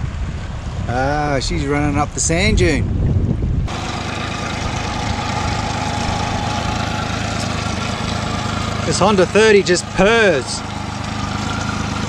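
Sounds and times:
outboard motor purring: 0:03.7 - 0:12.0.

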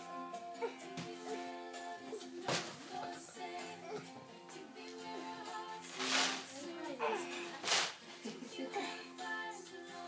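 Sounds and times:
background music: 0:00.0 - 0:10.0
toddler straining grunts: 0:07.0 - 0:07.5.

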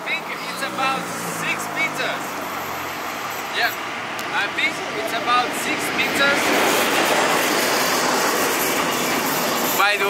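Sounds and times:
man's voice: 0:00.0 - 0:02.3, 0:03.6 - 0:06.5
passing car engine hum: 0:00.0 - 0:09.8
street traffic noise: 0:00.0 - 0:10.0.

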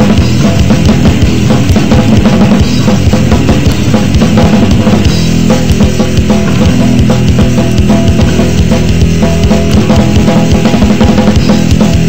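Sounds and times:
distorted guitar chords: 0:00.0 - 0:12.0
fast drumming: 0:00.0 - 0:12.0.

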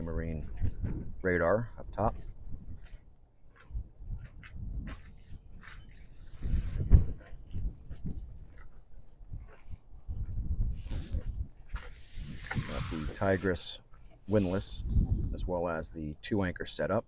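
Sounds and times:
wind buffeting microphone: 0:00.0 - 0:13.5, 0:14.3 - 0:15.6
footsteps on boat deck: 0:02.0 - 0:10.4.

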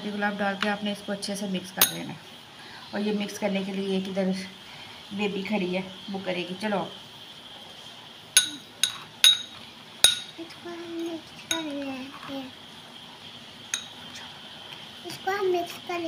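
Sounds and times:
spoon clinking against bowl: 0:01.8 - 0:02.0, 0:08.4 - 0:10.4, 0:11.5 - 0:11.7, 0:13.7 - 0:14.0.

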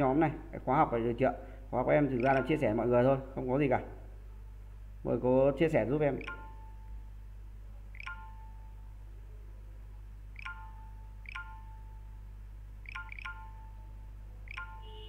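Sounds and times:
steady low hum: 0:00.0 - 0:15.0
electronic notification chimes: 0:02.2 - 0:02.7, 0:06.2 - 0:06.9, 0:08.0 - 0:08.8, 0:10.4 - 0:12.0, 0:12.9 - 0:15.0.

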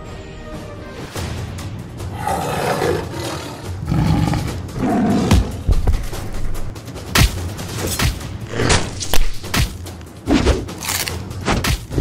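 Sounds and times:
background music: 0:00.0 - 0:12.0
big cat roaring: 0:02.1 - 0:05.6.

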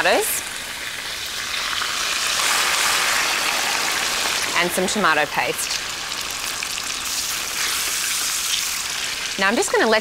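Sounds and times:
sauce sizzling in a pan: 0:00.0 - 0:10.0.

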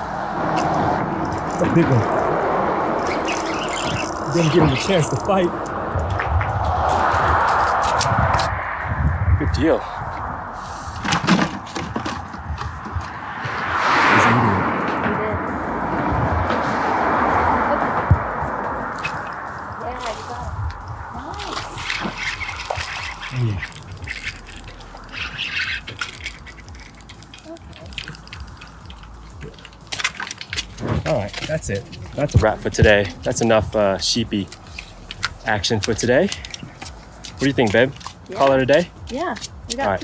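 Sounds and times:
traffic passing over bridge: 0:00.0 - 0:40.0.

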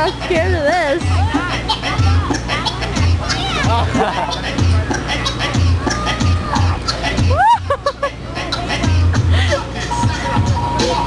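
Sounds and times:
crowd chatter: 0:00.0 - 0:11.0
music with bass beat: 0:00.0 - 0:11.0
person laughing: 0:03.7 - 0:04.5, 0:07.2 - 0:08.2
person whooping: 0:07.3 - 0:07.7.

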